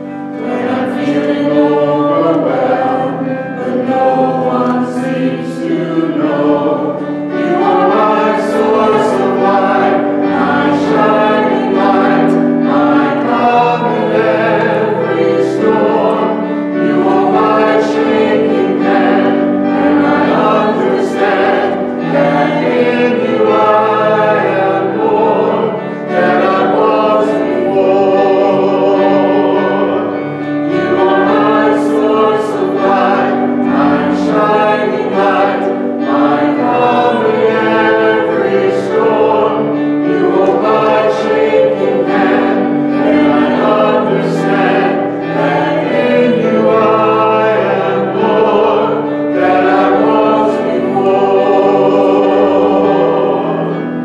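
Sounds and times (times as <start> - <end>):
church choir singing a hymn: 0.0 - 54.0.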